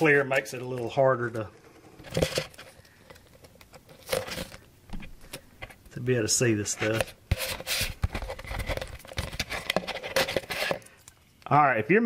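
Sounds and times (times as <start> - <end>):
plastic cup clicking and scraping: 6.8 - 11.2.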